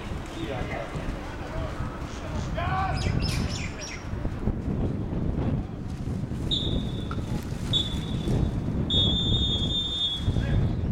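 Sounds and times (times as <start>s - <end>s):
wind buffeting microphone: 0.0s - 10.9s
referee's whistle blasts: 6.5s - 8.3s, 8.9s - 10.4s.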